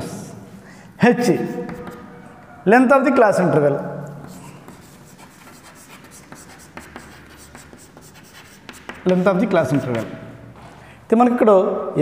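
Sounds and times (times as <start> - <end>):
chalk tapping and scraping: 1.5 - 2.2, 4.0 - 10.8.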